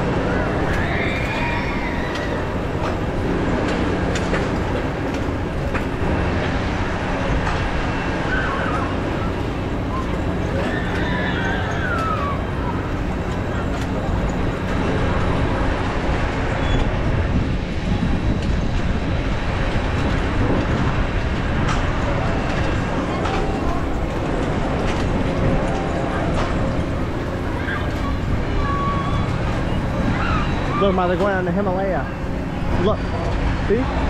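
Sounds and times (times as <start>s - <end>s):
ride machinery hum: 0.0s - 34.0s.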